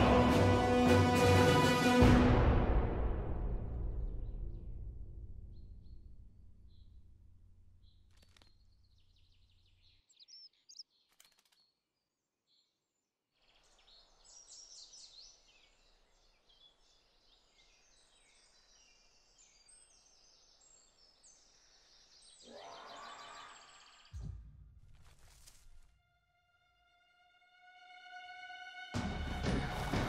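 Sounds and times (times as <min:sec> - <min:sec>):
small birds chirping: 0:05.5 - 0:24.3.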